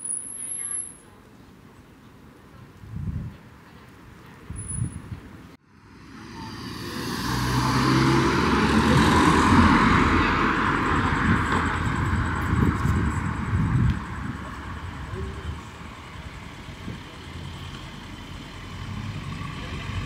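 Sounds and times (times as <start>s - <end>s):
passing vehicle engine and tyres: 4.5s - 20.0s.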